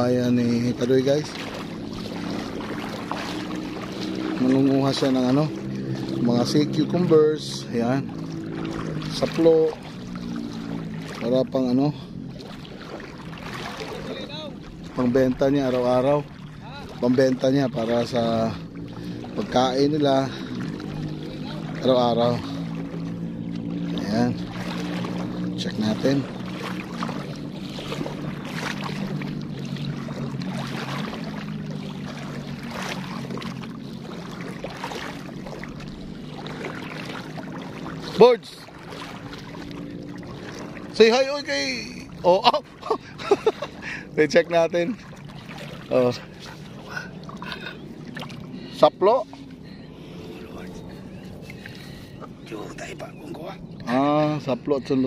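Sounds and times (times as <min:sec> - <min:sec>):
distant boat engine humming: 0:00.0 - 0:55.0
shallow seawater: 0:00.0 - 0:55.0.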